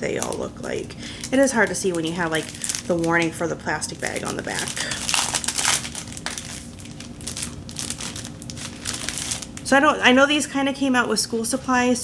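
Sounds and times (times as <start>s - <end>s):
plastic bag crinkling: 0.0s - 9.8s.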